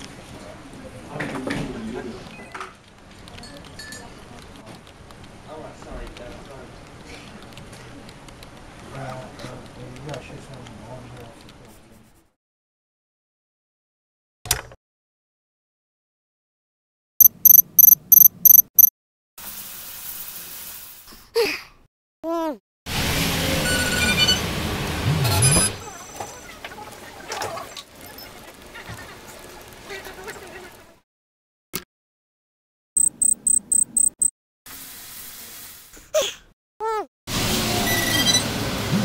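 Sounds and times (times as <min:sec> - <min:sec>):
high-pitched alarm beeps: 0:17.2 - 0:18.9, 0:33.0 - 0:34.3.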